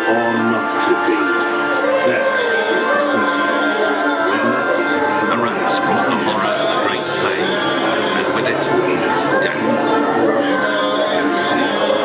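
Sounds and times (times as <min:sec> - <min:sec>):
voices over music: 0:00.0 - 0:12.0.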